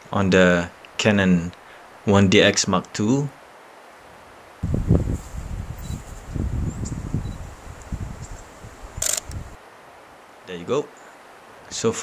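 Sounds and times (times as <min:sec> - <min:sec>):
wind buffeting microphone: 0:04.6 - 0:09.6.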